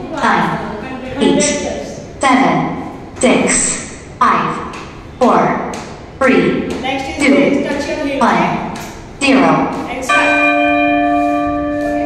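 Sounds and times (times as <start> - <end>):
timer bell chime: 10.1 - 12.0.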